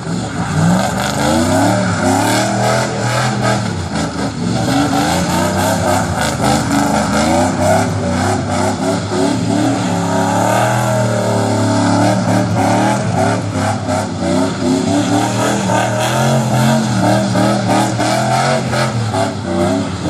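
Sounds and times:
pickup engine revving hard: 0:00.0 - 0:20.0.

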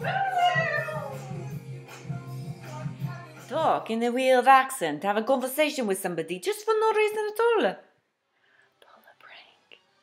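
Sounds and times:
faint whisper: 0:08.8 - 0:09.8.

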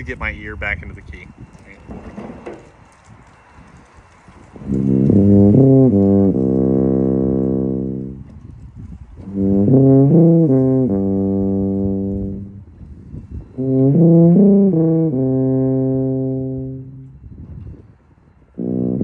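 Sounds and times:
tuba playing slow phrases: 0:04.6 - 0:08.4, 0:09.2 - 0:17.2, 0:18.6 - 0:19.0.

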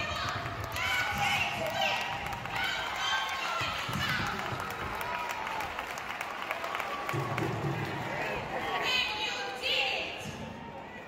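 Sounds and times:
scattered clapping: 0:00.0 - 0:08.6
crowd voices: 0:00.0 - 0:11.0.

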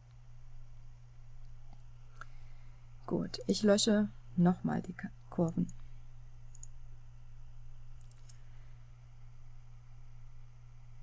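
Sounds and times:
low electrical hum: 0:00.0 - 0:11.0
computer mouse clicking: 0:06.5 - 0:06.8, 0:08.0 - 0:08.4.

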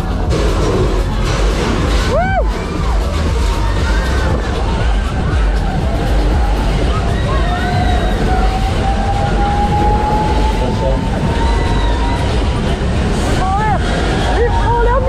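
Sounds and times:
heavy low rumble: 0:00.0 - 0:15.0
music: 0:00.0 - 0:15.0
voices: 0:02.5 - 0:15.0.

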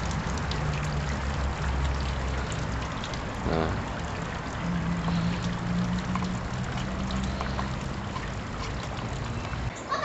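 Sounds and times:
fountain water splashing: 0:00.0 - 0:09.7.

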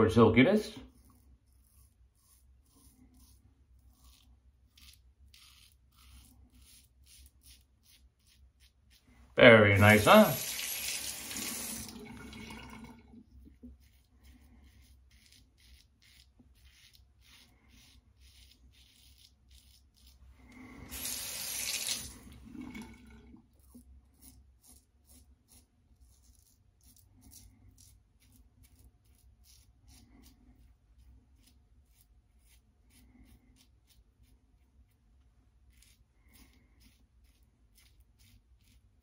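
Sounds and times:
razor scraping stubble: 0:00.8 - 0:12.0, 0:13.4 - 0:22.3, 0:23.5 - 0:35.0, 0:35.6 - 0:39.0
sink tap running: 0:09.9 - 0:13.0, 0:20.8 - 0:23.0.

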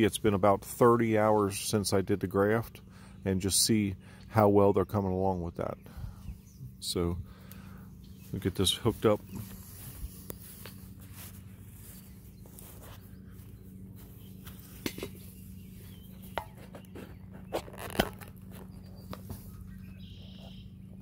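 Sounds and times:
faint steady low hum: 0:00.0 - 0:21.0.

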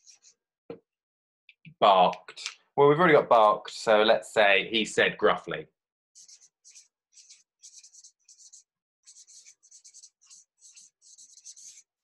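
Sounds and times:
marker scratching on paper: 0:00.0 - 0:00.4, 0:06.2 - 0:12.0.

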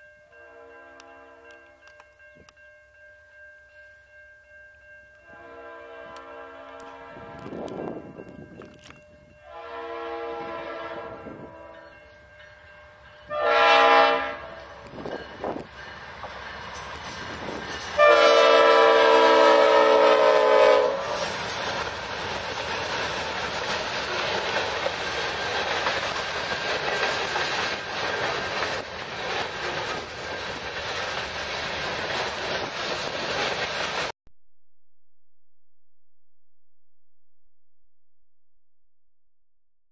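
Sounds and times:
locomotive horn blasts: 0:05.3 - 0:07.7, 0:09.4 - 0:11.9, 0:13.3 - 0:14.7, 0:18.0 - 0:21.4
train rumble: 0:05.3 - 0:34.1
clattering train wheels: 0:14.1 - 0:18.0, 0:21.1 - 0:34.1.

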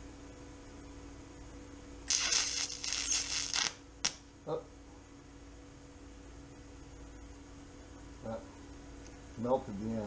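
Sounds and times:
welder electrical hum: 0:00.0 - 0:10.0
sharp snap: 0:02.1 - 0:04.2
welding arc crackling: 0:02.1 - 0:04.2.

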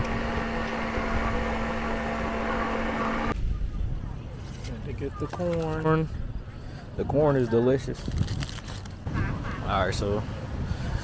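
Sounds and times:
blender running: 0:00.0 - 0:03.3
market background: 0:00.0 - 0:11.0.

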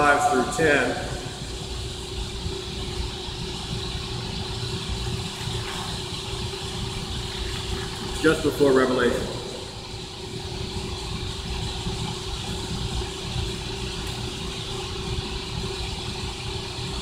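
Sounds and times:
steady mechanical hum: 0:00.0 - 0:17.0.

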